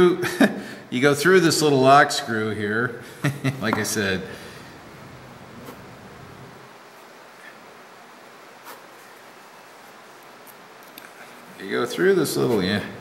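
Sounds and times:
room hiss: 0.0s - 13.0s.

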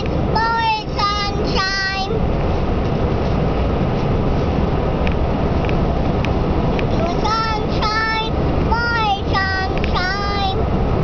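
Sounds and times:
car cabin road noise: 0.0s - 11.0s
young child singing: 0.4s - 2.2s, 7.0s - 10.7s.

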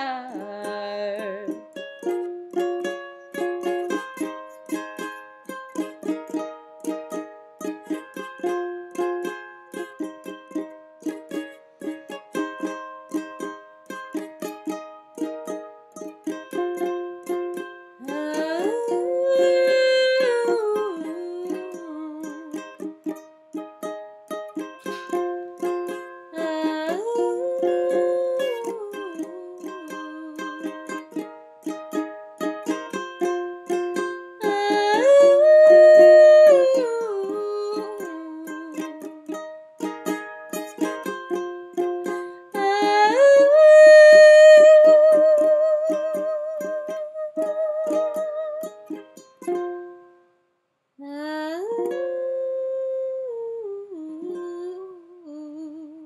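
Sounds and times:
woman singing wordless melody: 0.0s - 4.4s, 14.1s - 23.3s, 24.6s - 49.1s, 51.0s - 56.0s
strummed ukulele: 0.0s - 50.4s, 51.1s - 56.0s.

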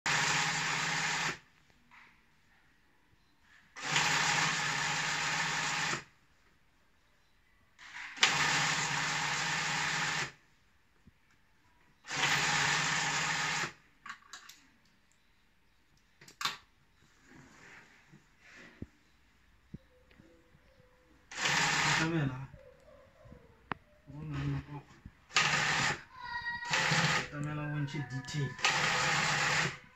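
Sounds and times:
sewing machine running: 0.1s - 1.4s, 3.8s - 6.1s, 8.2s - 10.4s, 12.0s - 13.8s, 21.3s - 22.3s, 25.3s - 26.1s, 26.7s - 27.5s, 28.2s - 29.9s.

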